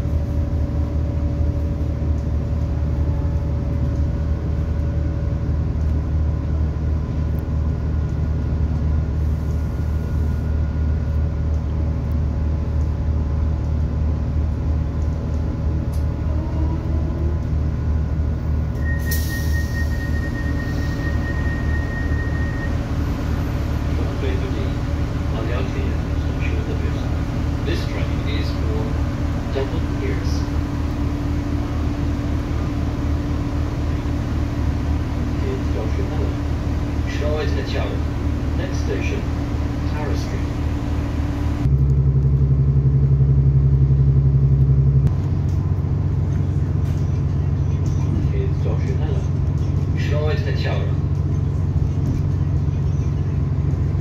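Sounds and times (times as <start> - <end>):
diesel train idling rumble: 0.0 - 54.0.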